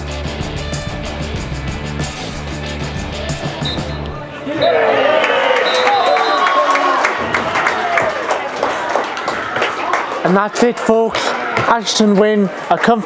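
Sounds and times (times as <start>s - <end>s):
background music with bass line: 0.0s - 4.3s
people talking and calling out: 2.8s - 13.0s.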